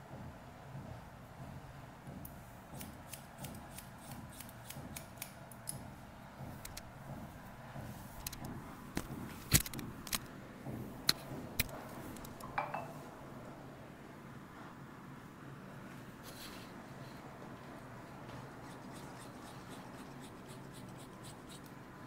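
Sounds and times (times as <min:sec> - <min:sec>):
scissors snipping hair: 0:02.8 - 0:05.8.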